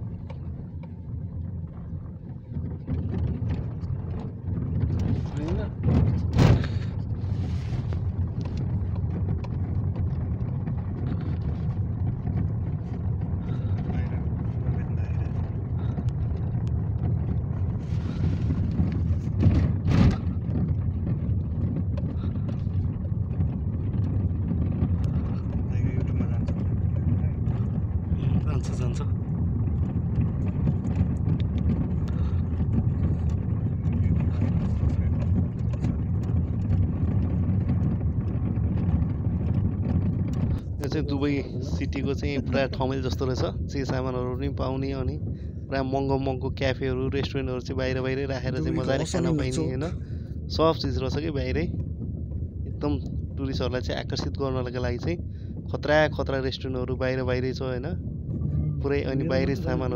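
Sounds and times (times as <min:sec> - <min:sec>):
car engine and tyres rumbling: 0:00.0 - 0:59.9.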